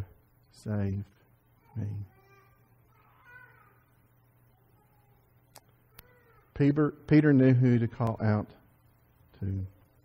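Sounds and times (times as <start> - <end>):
faint high-pitched cries: 1.5 - 6.7.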